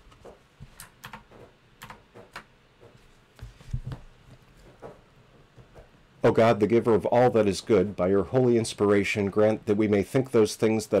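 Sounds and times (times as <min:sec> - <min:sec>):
computer keys tapping: 0:00.1 - 0:03.0.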